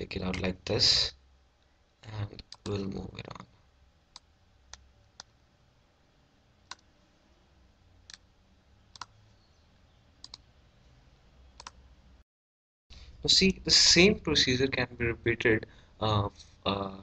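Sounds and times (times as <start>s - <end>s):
faint low hum: 0.0s - 12.2s, 13.0s - 17.0s
computer mouse clicking: 2.4s - 2.8s, 8.9s - 9.2s, 10.2s - 10.4s, 11.6s - 11.8s.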